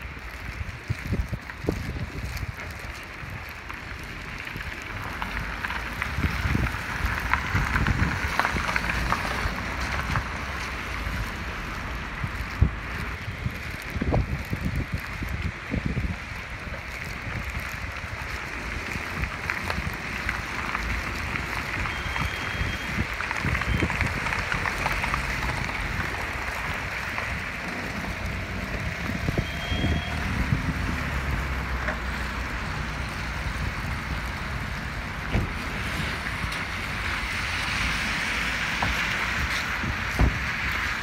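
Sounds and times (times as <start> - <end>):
rain on wet asphalt: 0.0 - 41.0
wind buffeting microphone: 0.0 - 41.0.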